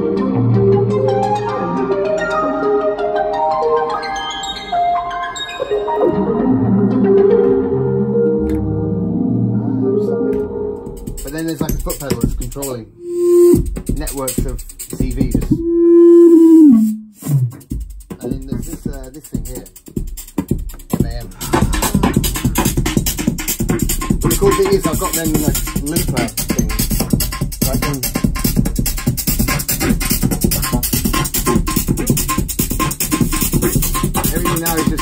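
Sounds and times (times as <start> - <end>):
synthesizer tone gliding down: 13.0 - 13.6, 15.5 - 17.4
low falling synth note: 15.5 - 17.1
short high blip: 15.5 - 17.5.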